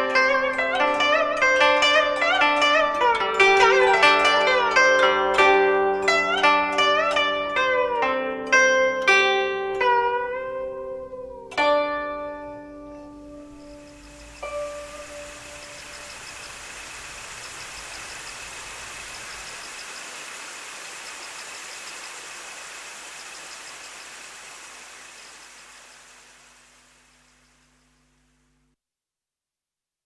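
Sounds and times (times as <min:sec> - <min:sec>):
plucked zither note: 0:00.0 - 0:16.5
hiss-like noise: 0:12.6 - 0:28.7.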